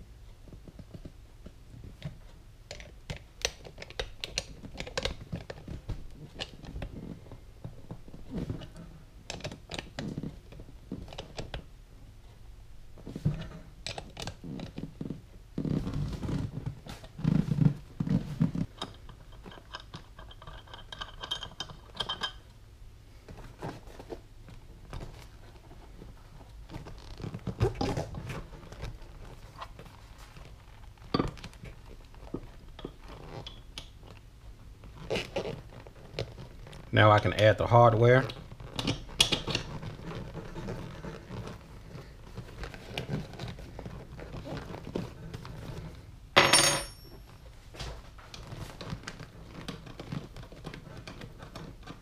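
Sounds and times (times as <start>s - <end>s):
metal parts clicking and scraping: 18.7s - 22.4s.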